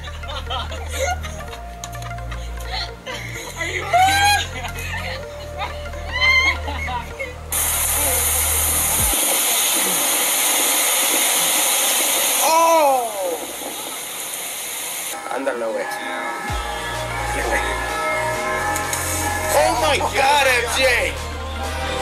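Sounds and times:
bass-heavy music: 0.0 - 9.6, 16.5 - 22.0
loud steady hiss: 6.7 - 22.0.

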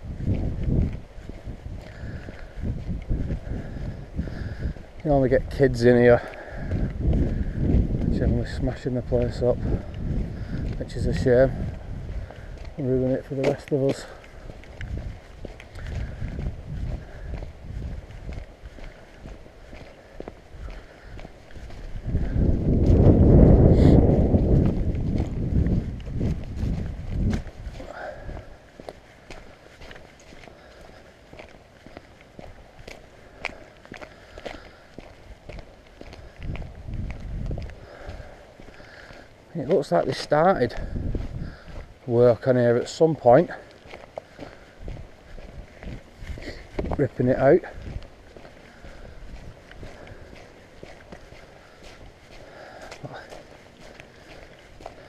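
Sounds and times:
footsteps on wet tarmac: 0.0 - 55.0
low rumble: 21.7 - 28.7.

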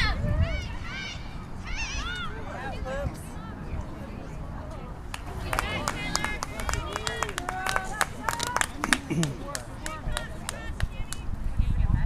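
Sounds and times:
low outdoor rumble: 0.0 - 12.0
players shouting: 5.2 - 10.8.

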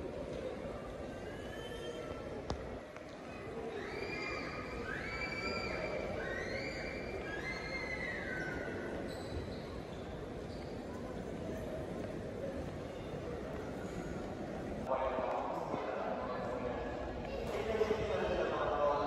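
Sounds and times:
terminal hall hum: 0.0 - 19.0.

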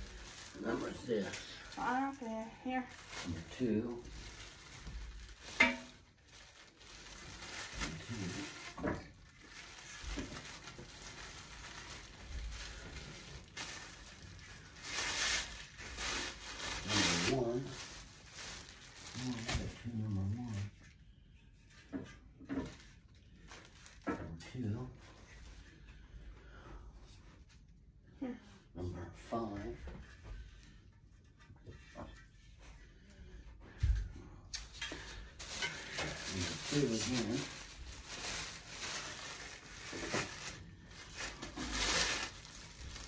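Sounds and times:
plastic wrapping crinkling: 0.0 - 26.6, 33.9 - 43.0.

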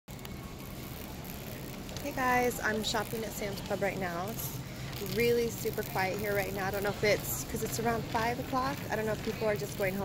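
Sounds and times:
shopping cart rolling on concrete: 0.1 - 10.0.

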